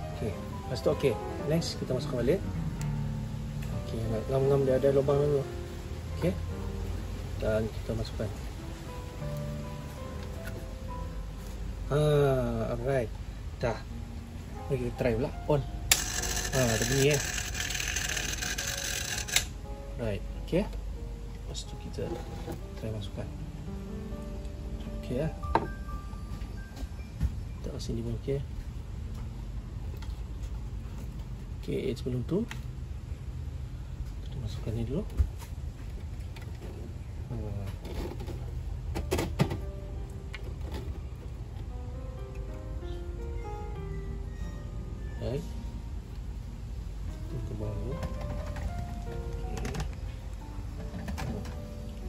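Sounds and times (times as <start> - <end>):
faint motor hum: 0.0 - 38.9
soft slow background music: 0.0 - 52.0
pump motor rattling: 15.9 - 19.5
plastic parts knocking: 48.0 - 50.0.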